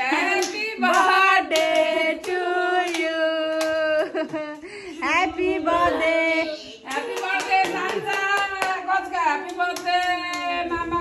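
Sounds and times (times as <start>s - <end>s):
group singing: 0.0s - 4.4s, 5.0s - 11.0s.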